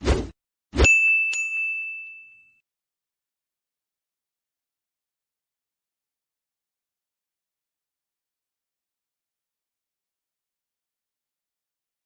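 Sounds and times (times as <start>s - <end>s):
bright ding ringing: 0.8s - 2.6s.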